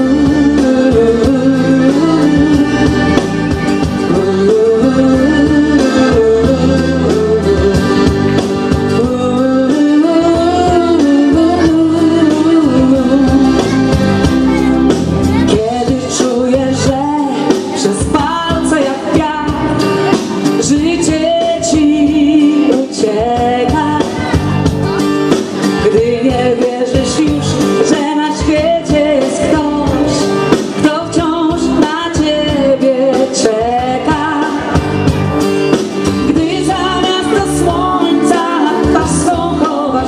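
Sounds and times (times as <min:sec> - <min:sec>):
woman singing with vibrato: 0:00.0 - 0:25.0, 0:25.6 - 0:35.1, 0:36.1 - 0:40.0
amplified backing music: 0:00.0 - 0:40.0.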